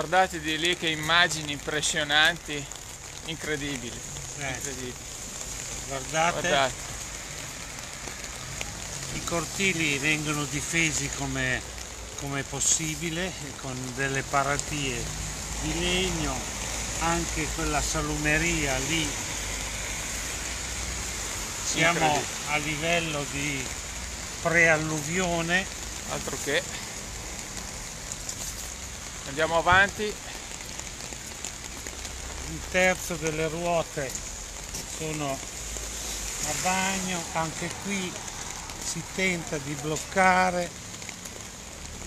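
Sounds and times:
rain on a wet street: 0.0s - 42.0s.

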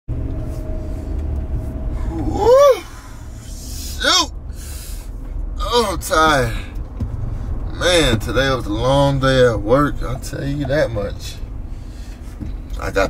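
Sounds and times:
vehicle cabin rumble: 0.1s - 13.0s
man sighing: 2.0s - 5.1s
man speaking: 3.7s - 4.3s, 5.6s - 6.7s, 7.7s - 11.4s.

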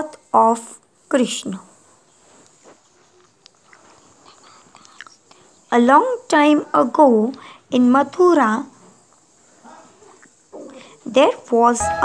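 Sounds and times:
woman speaking: 0.0s - 1.7s, 11.1s - 12.0s
background hiss: 0.0s - 12.0s
high-pitched whine: 11.8s - 12.0s.

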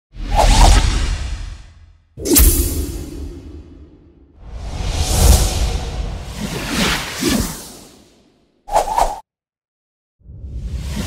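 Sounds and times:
whoosh sound effects: 2.2s - 7.9s.

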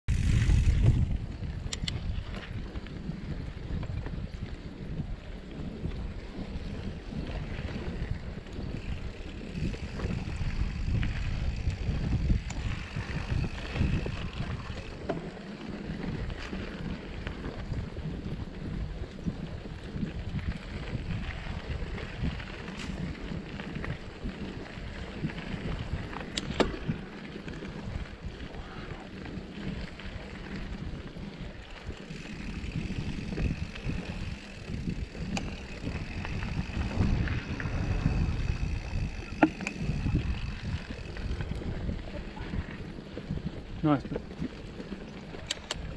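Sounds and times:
bike clicks and knocks: 0.1s - 4.8s, 5.6s - 28.4s, 29.1s - 42.8s, 44.3s - 45.9s
bike tyres rumbling on dirt: 0.1s - 45.9s
wind on microphone: 0.1s - 45.9s.

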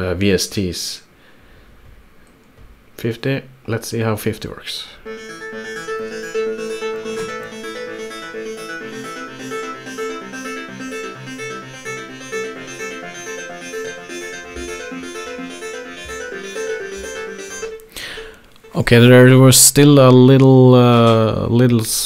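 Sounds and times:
plucked synth notes: 5.0s - 19.4s.

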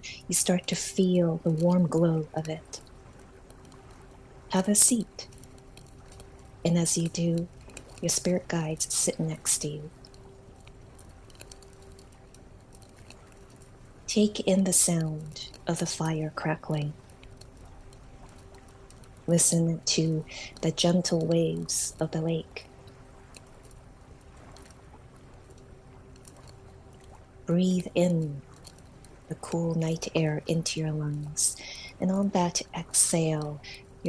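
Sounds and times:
campfire crackling: 0.0s - 34.0s
faint steady hum: 0.0s - 34.0s
lake waves lapping: 0.0s - 34.0s
thin steady tone: 0.0s - 34.0s.

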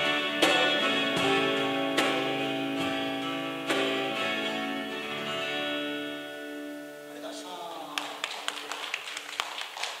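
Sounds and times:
hand claps: 7.9s - 10.0s.

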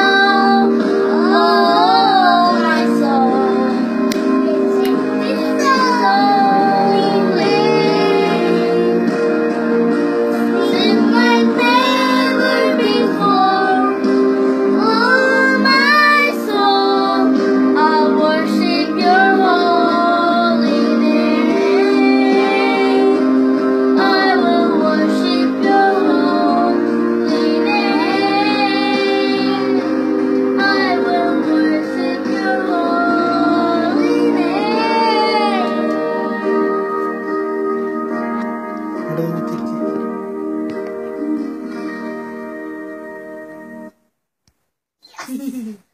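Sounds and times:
child singing into microphone: 0.0s - 3.9s, 4.5s - 9.0s, 10.5s - 14.0s, 14.8s - 23.3s, 24.0s - 29.9s, 30.6s - 36.6s
backing music: 0.0s - 44.0s
electronic keyboard chords: 0.0s - 44.0s.

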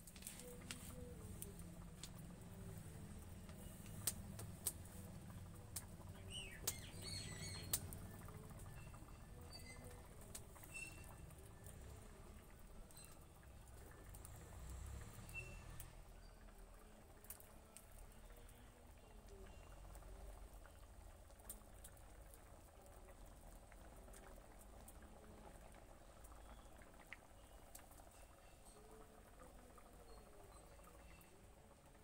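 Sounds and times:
low steady rumble: 0.0s - 17.1s
water boiling in a wok: 0.0s - 32.0s
wood fire popping: 0.0s - 32.0s
small pops: 3.4s - 5.0s, 6.6s - 6.9s, 7.5s - 8.1s
small birds chirping: 5.8s - 11.7s.

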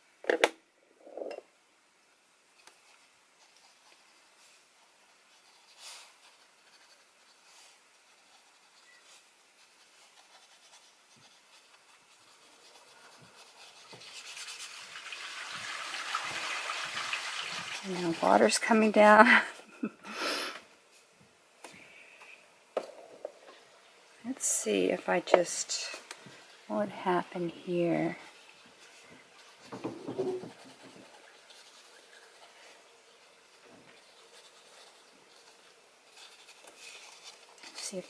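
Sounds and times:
water rushing through plumbing: 13.2s - 19.0s.

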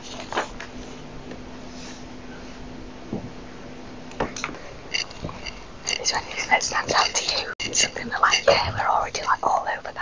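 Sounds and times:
people whispering: 5.9s - 10.0s.

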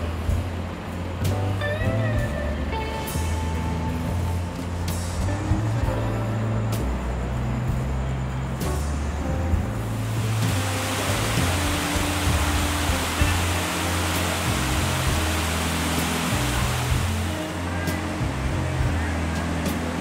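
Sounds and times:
music from outdoor speakers: 0.0s - 20.0s
waterfall rushing water: 10.0s - 20.0s.

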